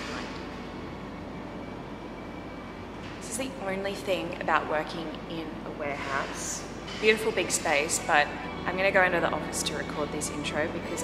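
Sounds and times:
warehouse background noise: 0.0s - 11.0s.

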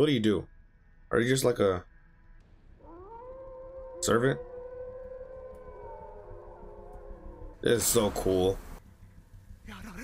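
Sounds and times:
long animal-like howl: 2.8s - 7.6s.

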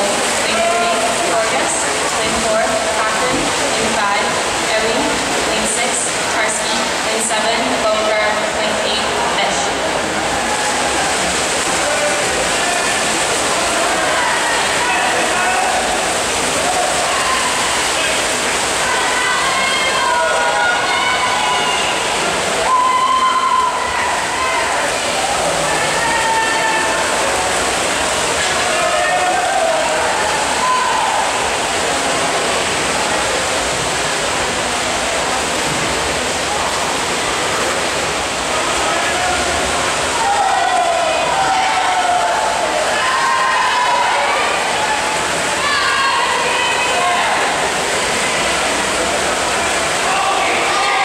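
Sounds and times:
swimmers splashing: 0.0s - 51.0s
spectators cheering and shouting: 9.8s - 33.9s, 38.3s - 51.0s.

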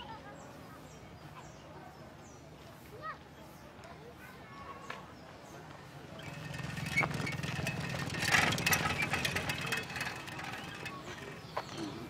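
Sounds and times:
small engine running: 6.1s - 12.0s.

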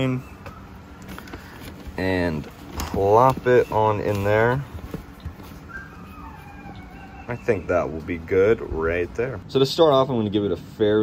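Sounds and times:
dog whining faintly: 5.6s - 8.0s.

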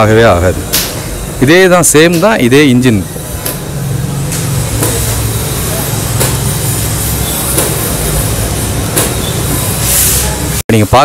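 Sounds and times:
diesel engine running: 3.0s - 10.6s.

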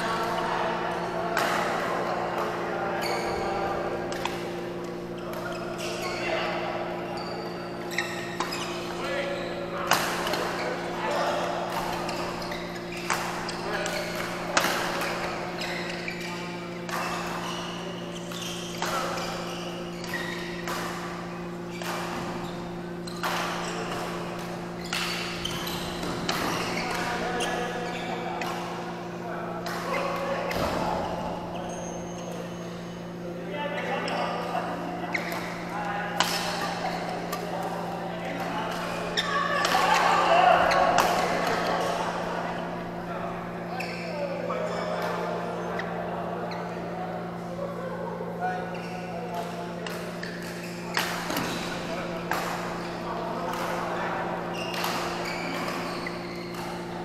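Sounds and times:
people's voices echoing: 0.0s - 57.0s
rackets striking shuttlecock: 4.1s - 4.6s, 11.7s - 16.2s, 23.0s - 27.7s, 36.2s - 37.6s.

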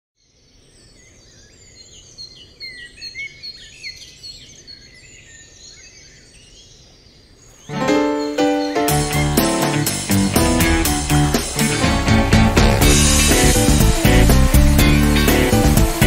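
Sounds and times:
faint outdoor ambience: 0.2s - 16.0s
birds chirping: 0.6s - 16.0s
guitar music: 7.7s - 16.0s.

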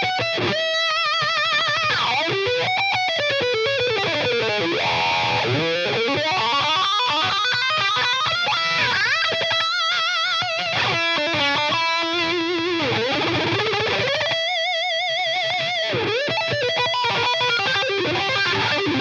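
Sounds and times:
distorted electric guitar shredding: 0.0s - 19.0s.

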